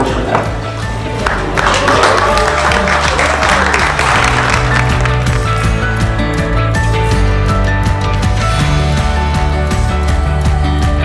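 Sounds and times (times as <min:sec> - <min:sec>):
background music with bass line: 0:00.0 - 0:11.0
crowd applauding and cheering: 0:01.0 - 0:07.4
person whooping: 0:01.7 - 0:03.8.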